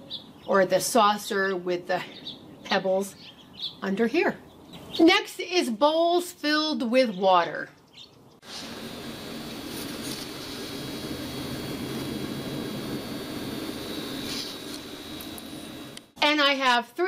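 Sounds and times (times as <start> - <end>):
faint high whine: 8.4 - 16.4
low mechanical hum: 8.4 - 16.4.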